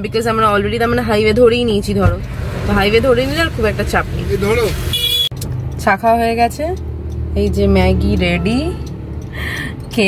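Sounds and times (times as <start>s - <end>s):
woman talking: 0.0s - 4.4s, 7.4s - 8.8s
car engine and road rumble: 0.0s - 10.0s.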